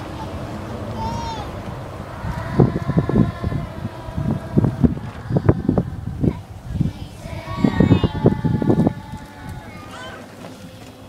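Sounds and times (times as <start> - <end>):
children shouting or chanting: 0.0 - 11.0.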